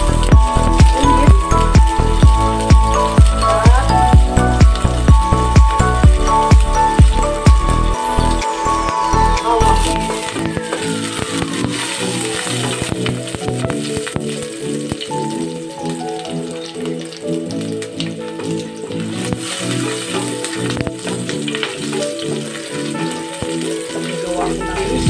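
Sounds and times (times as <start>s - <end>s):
onion and garlic sizzling in oil: 0.0s - 25.0s
rhythmic background music: 0.0s - 25.0s.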